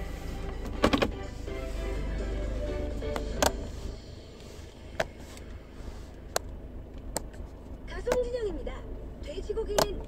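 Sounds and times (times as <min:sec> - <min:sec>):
music from car radio: 0:00.0 - 0:06.8
low hum: 0:00.0 - 0:10.0.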